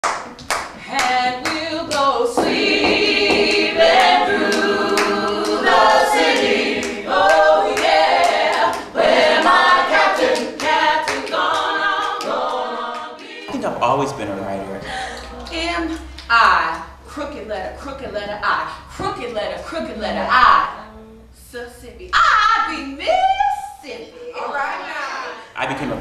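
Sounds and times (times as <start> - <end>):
hand-clapping on the beat: 0.0 - 13.4
group singing a cappella gospel: 0.0 - 26.0.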